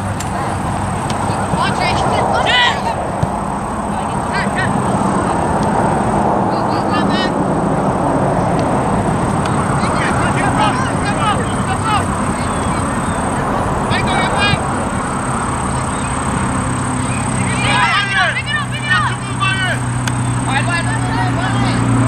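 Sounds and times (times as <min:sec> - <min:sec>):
steady rushing background: 0:00.0 - 0:22.0
people shouting short calls: 0:01.2 - 0:05.5, 0:09.4 - 0:21.8.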